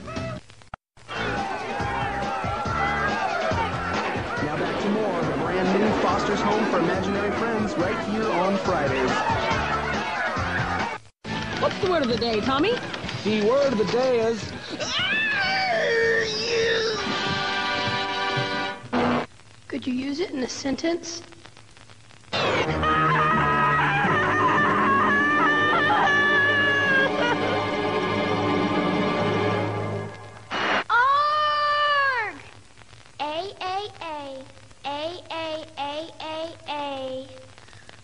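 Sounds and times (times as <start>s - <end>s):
young man screaming: 14.8s - 17.1s, 22.9s - 27.4s, 30.9s - 32.4s.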